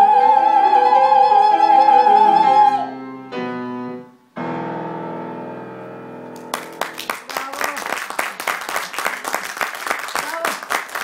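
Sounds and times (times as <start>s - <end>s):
audience applause: 6.4s - 11.0s.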